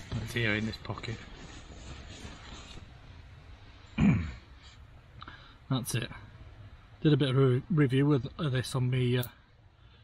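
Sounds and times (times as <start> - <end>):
man clearing throat: 4.0 - 4.4.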